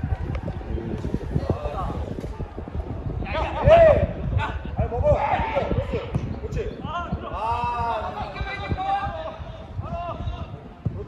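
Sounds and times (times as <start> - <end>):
footballers shouting: 0.0 - 10.6
irregular low thuds: 0.0 - 11.0.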